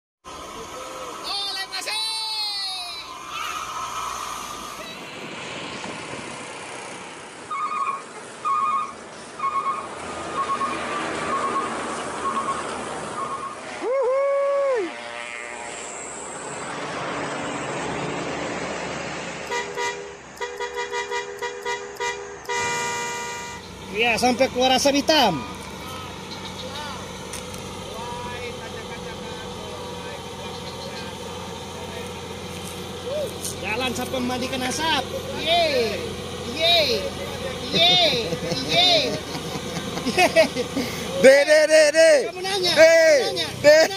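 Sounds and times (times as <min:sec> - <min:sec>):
diesel truck engine running: 0:00.2 - 0:43.9
passing traffic: 0:00.2 - 0:43.9
truck horn blasts: 0:07.5 - 0:13.9, 0:14.7 - 0:16.0, 0:19.4 - 0:23.8, 0:25.0 - 0:26.2.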